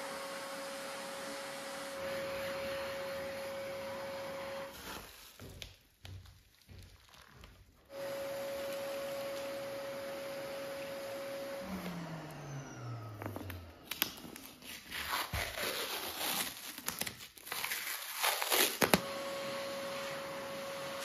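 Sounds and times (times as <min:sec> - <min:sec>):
vacuum cleaner running: 0:00.0 - 0:05.1, 0:07.9 - 0:14.9, 0:18.8 - 0:21.0
adhesive tape peeled off floor: 0:04.7 - 0:07.8, 0:13.2 - 0:19.1
tape crumpling: 0:13.2 - 0:19.0.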